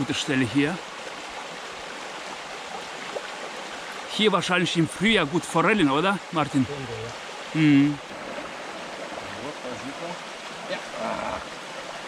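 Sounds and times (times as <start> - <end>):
river water flowing: 0.0 - 12.0.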